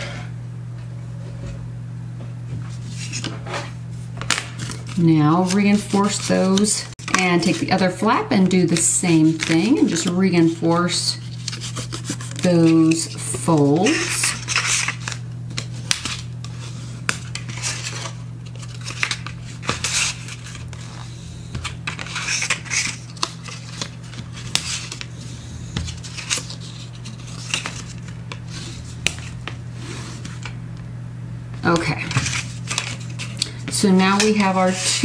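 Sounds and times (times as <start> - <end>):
bone folder scraping card: 11.2 - 30.5, 31.7 - 33.4.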